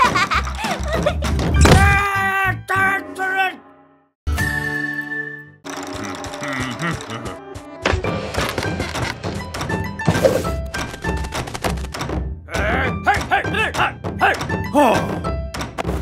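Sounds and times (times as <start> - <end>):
cartoon background music: 0.0 - 16.0.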